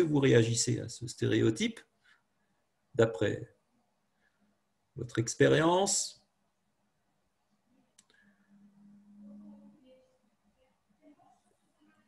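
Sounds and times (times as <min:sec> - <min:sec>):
faint low steady hum: 0:00.0 - 0:12.0.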